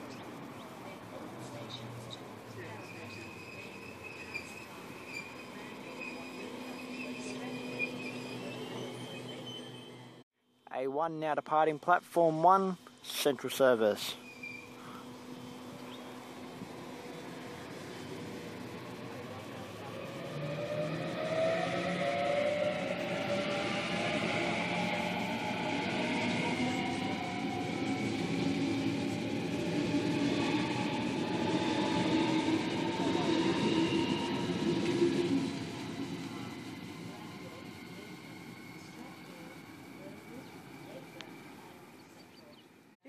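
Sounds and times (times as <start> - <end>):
electric train passing: 0.0 - 10.2, 11.0 - 43.0
traction motor whine: 0.0 - 10.2, 14.0 - 43.0
wheel and rail noise: 0.0 - 10.2, 13.9 - 43.0.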